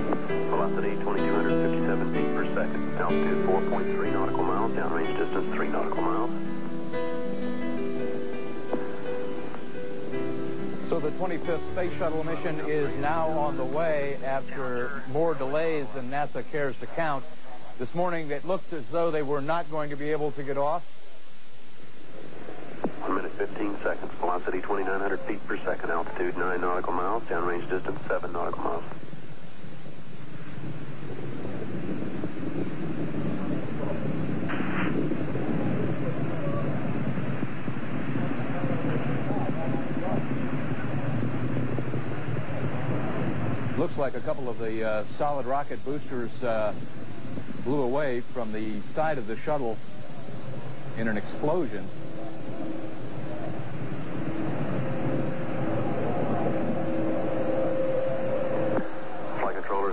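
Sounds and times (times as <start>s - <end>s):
faint voices: 0.0s - 21.3s, 22.0s - 29.3s, 30.6s - 59.9s
broadcast audio hiss and hum: 0.0s - 59.9s
faint steady tone: 0.0s - 59.9s
low rumbling roar: 30.6s - 43.9s, 50.2s - 59.9s
brief hiss: 34.4s - 35.1s.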